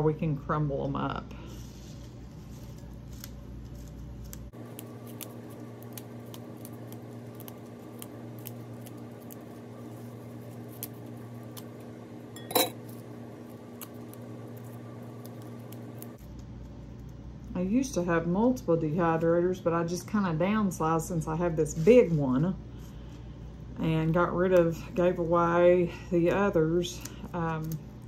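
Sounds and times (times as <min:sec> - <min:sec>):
steady low hum: 0:00.0 - 0:28.0
parsley leaves plucked by hand: 0:02.6 - 0:11.9.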